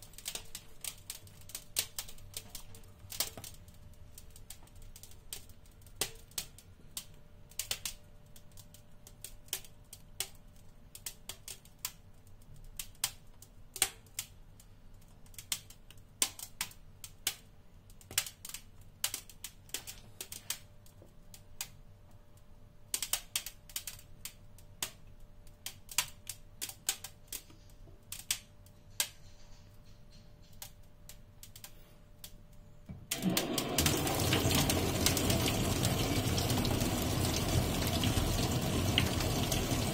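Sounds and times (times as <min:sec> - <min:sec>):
dry ice crackling and popping: 0:00.0 - 0:39.9
dry ice hissing and bubbling: 0:33.2 - 0:39.9.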